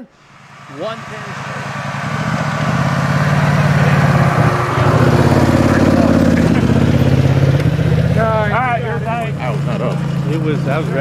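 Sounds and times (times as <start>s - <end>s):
quad bike engine running: 0.2s - 11.0s.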